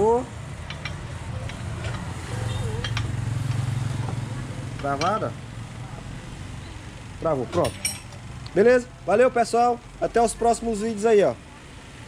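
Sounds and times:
wrench metal clicks: 0:00.6 - 0:03.7.

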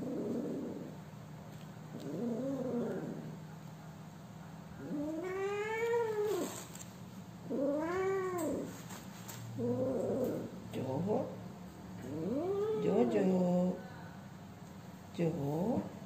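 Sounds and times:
cat yowling: 0:04.8 - 0:06.6.

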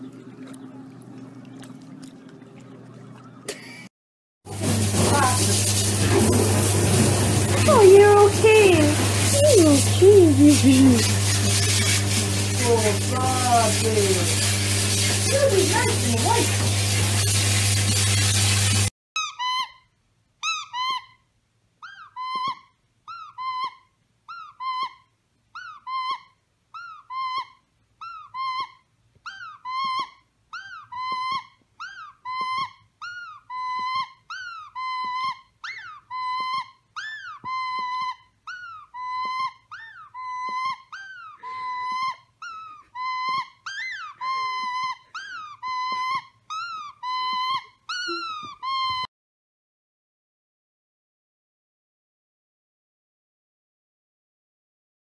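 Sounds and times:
squeaky dog toy squeaking: 0:19.2 - 0:21.2, 0:21.8 - 0:25.0, 0:25.6 - 0:49.1.

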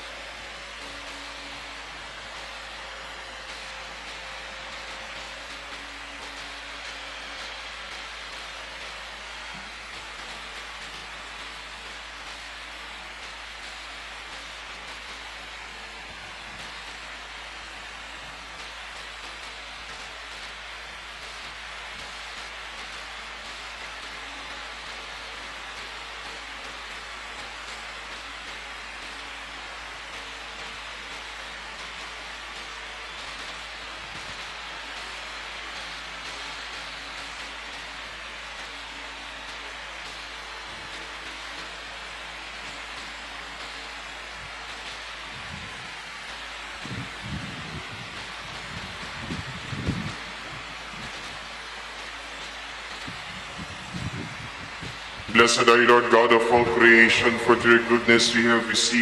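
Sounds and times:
room noise hiss: 0:00.0 - 0:59.0.

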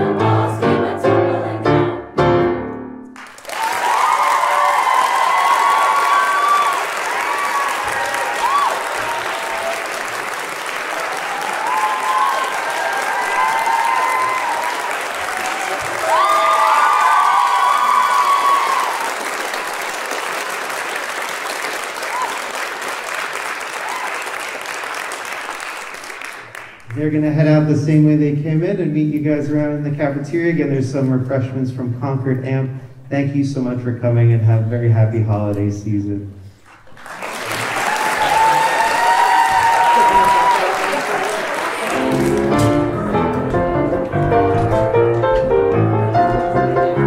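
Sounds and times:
audience applauding: 0:03.2 - 0:27.0, 0:36.6 - 0:44.8.

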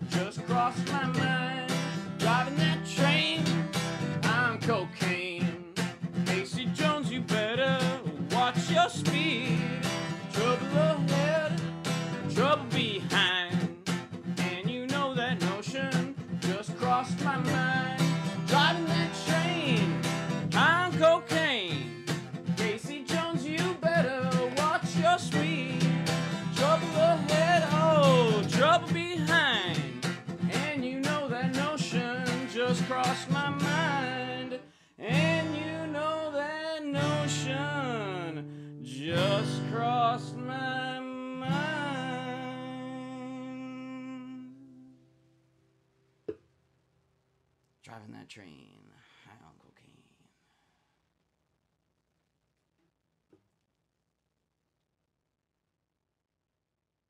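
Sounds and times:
acoustic guitar playing: 0:00.0 - 0:45.5.

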